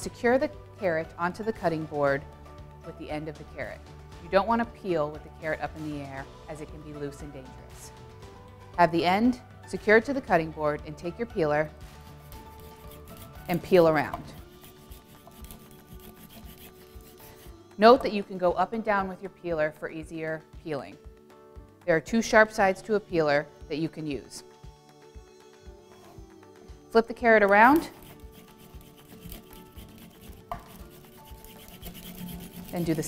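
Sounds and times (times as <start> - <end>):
peeler scraping a carrot: 12.0 - 17.6, 27.5 - 33.0.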